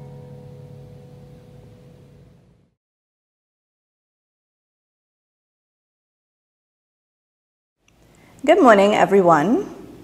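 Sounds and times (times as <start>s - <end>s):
acoustic guitar chord ringing: 0.0s - 2.8s.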